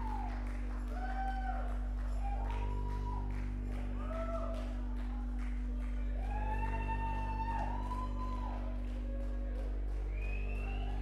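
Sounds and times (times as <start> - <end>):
band low drone: 0.0 - 11.0.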